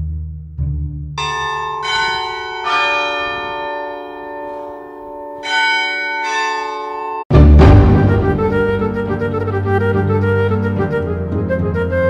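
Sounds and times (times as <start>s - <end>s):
bells ringing: 1.2s - 7.3s
low plucked string notes: 7.3s - 10.0s.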